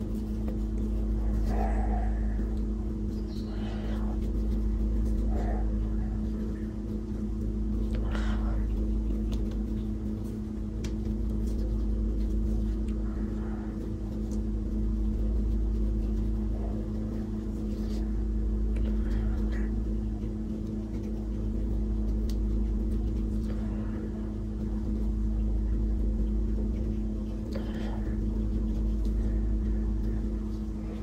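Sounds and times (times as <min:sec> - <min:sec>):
low hum with fixed tones: 0:00.0 - 0:31.0.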